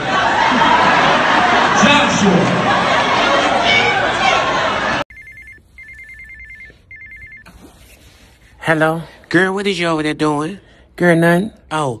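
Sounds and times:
loud crowd voices: 0.0s - 5.0s.

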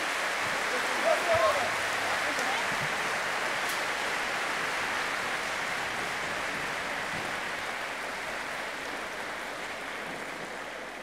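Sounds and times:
audience applauding: 0.0s - 9.9s.

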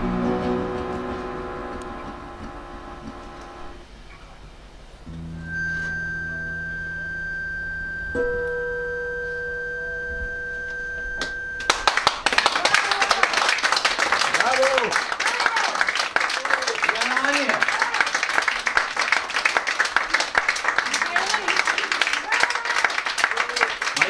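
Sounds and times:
acoustic band playing: 0.0s - 4.0s, 5.0s - 12.3s
audience applause: 11.2s - 24.0s.

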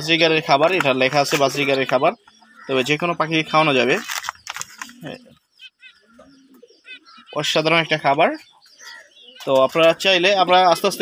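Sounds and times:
finches chirping: 0.1s - 11.0s
low pigeon-like coo: 4.7s - 5.4s, 6.1s - 7.3s.

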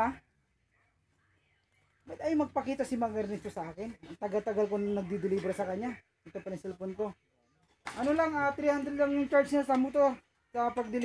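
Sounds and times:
man speaking: 2.1s - 7.2s, 7.9s - 11.0s.

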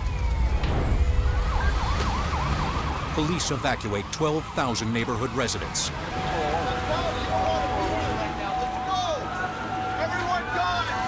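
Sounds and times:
siren yelping: 0.0s - 11.0s.

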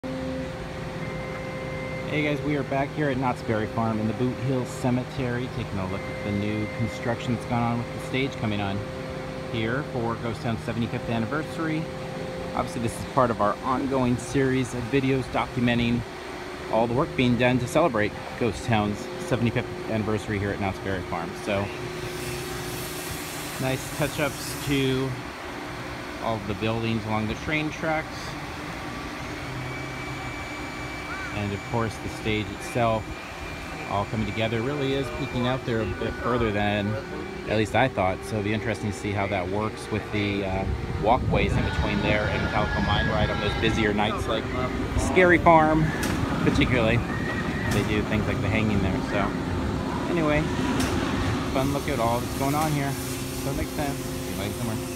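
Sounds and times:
high-pitched machine whine: 0.0s - 54.9s
machinery hum: 0.0s - 54.9s.

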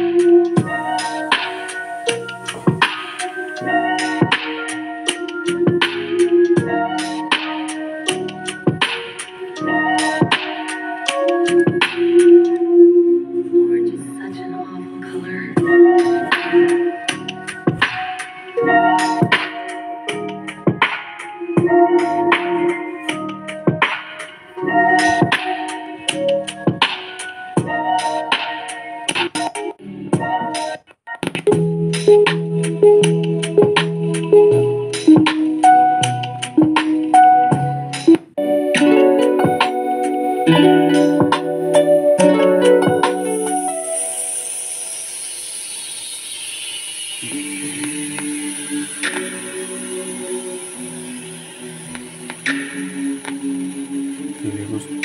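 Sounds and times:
music from portable speaker: 0.0s - 55.0s.

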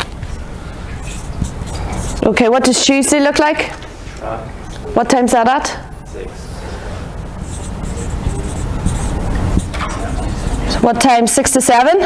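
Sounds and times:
marker writing on whiteboard: 0.0s - 3.0s, 6.5s - 11.7s.

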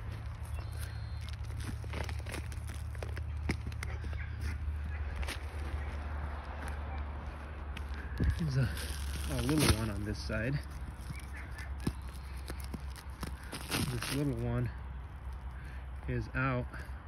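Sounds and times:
small crackles and clicks: 0.2s - 3.9s
stick scraping soil: 8.1s - 14.7s.

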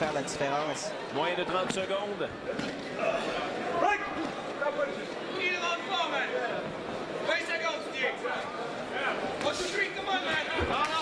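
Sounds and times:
crowd chatter: 0.0s - 11.0s.

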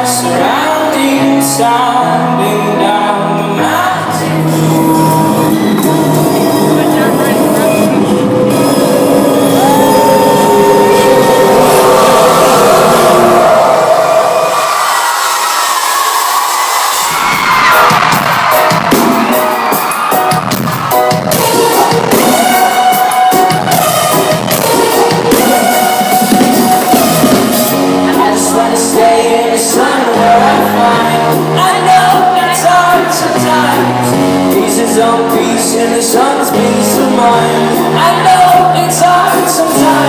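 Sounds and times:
live rock band music: 0.0s - 14.6s, 16.6s - 40.0s
crowd cheering: 5.0s - 34.2s.

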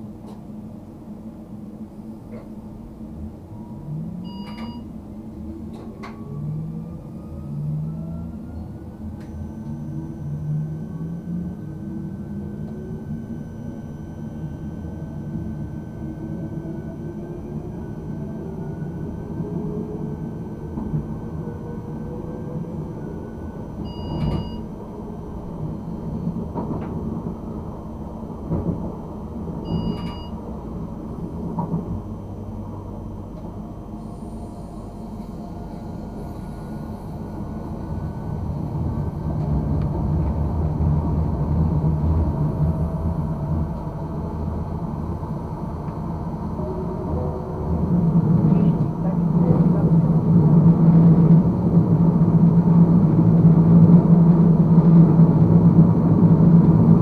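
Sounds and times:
short electronic beeps: 4.3s - 4.9s, 23.9s - 24.7s, 29.7s - 30.4s
wheels rumbling on track: 14.4s - 57.0s.

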